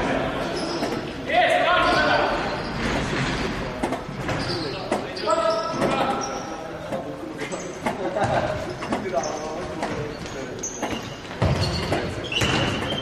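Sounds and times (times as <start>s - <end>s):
shoes squeaking on floor: 0.4s - 1.2s, 1.8s - 13.0s
ball kicked and bouncing: 10.8s - 13.0s.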